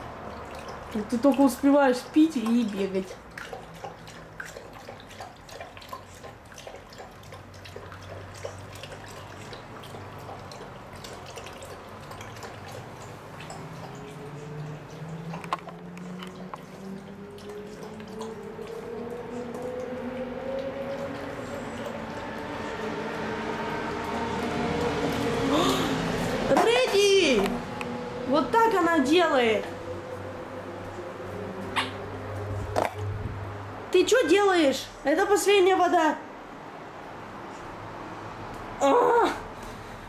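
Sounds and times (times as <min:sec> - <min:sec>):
dog lapping water: 0:00.0 - 0:27.7
rising drawn-out tone: 0:16.8 - 0:26.5, 0:27.4 - 0:28.6, 0:29.6 - 0:33.8.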